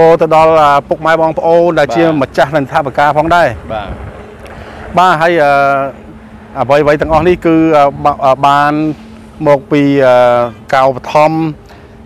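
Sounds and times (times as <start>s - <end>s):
man speaking: 0.0s - 4.0s, 4.9s - 11.6s
outdoor background noise: 0.0s - 12.0s.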